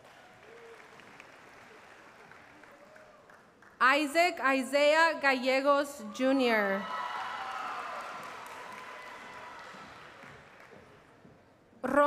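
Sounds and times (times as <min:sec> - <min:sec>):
faint crowd cheering and clapping: 0:00.0 - 0:03.8, 0:06.6 - 0:11.3.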